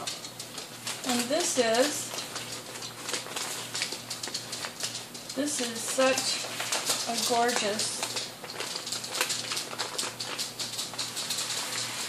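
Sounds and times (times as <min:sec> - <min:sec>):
paper envelope crinkling: 0:00.6 - 0:12.0.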